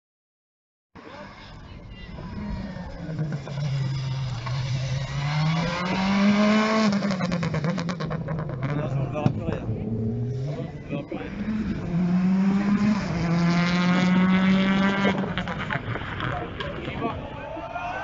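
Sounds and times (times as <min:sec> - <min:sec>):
exhaust crackles: 0:02.1 - 0:17.2
rally car engine passing: 0:02.1 - 0:17.2.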